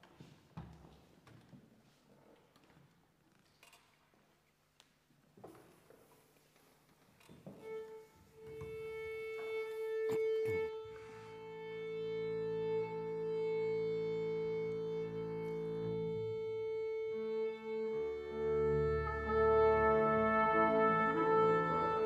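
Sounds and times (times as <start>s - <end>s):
low instruments sustained notes: 7.7s - 22.0s.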